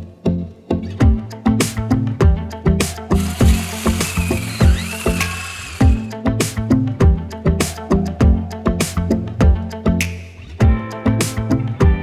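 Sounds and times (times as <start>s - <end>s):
plucked-string background music: 0.0s - 12.0s
tape measure ratcheting whir: 3.1s - 6.1s.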